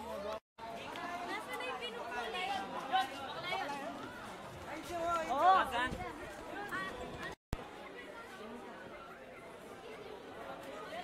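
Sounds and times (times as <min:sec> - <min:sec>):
teenagers chattering: 0:00.0 - 0:11.0.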